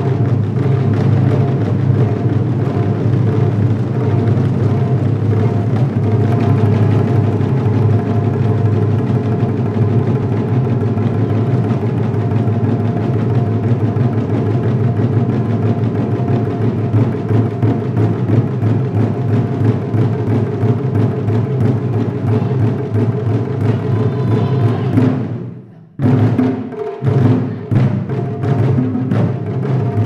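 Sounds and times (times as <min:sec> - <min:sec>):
taiko drums pounding: 0:00.0 - 0:30.0.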